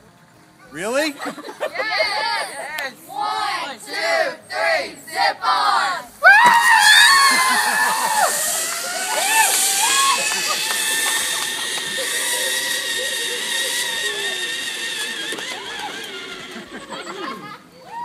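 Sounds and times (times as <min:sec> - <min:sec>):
people shouting and cheering: 0:01.8 - 0:14.8
zip line pulley whine: 0:06.2 - 0:18.0.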